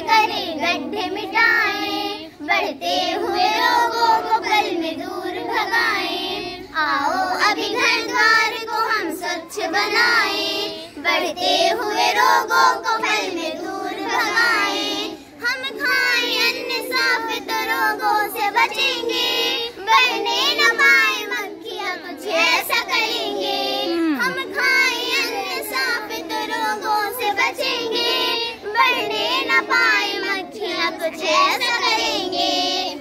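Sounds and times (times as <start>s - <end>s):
girls singing in unison: 0.0s - 33.0s.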